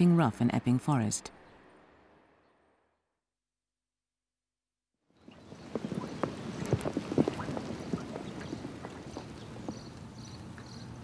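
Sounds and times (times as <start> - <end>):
rain on wet pavement: 5.4 - 10.7.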